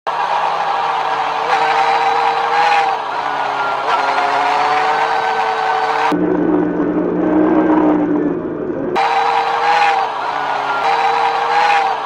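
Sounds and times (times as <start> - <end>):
road noise: 0.1 - 12.0
motorcycle engine running: 1.4 - 10.0.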